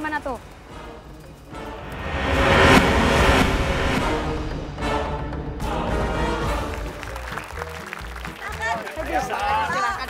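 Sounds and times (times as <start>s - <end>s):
loud rushing whoosh: 1.5s - 6.4s.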